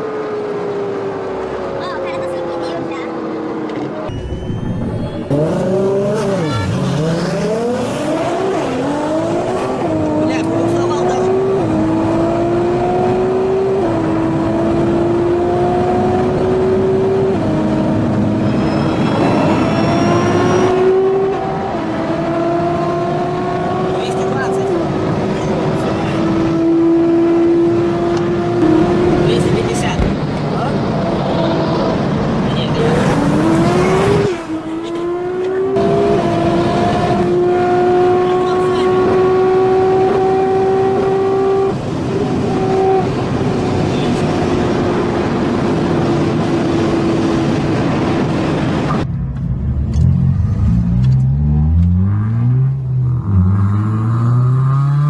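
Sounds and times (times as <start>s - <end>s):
sports car engine accelerating: 5.1s - 55.0s.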